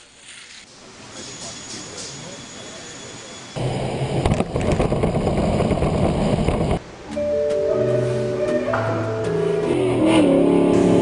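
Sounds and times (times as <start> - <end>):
vehicle engine running rough: 3.6 - 6.8, 9.6 - 11.0.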